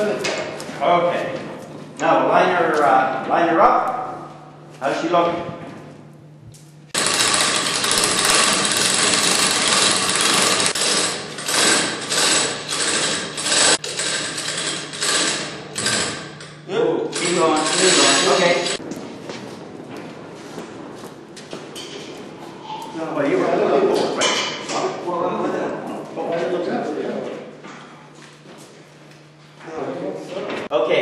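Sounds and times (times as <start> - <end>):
rushing rattling machine noise: 7.0 - 18.8.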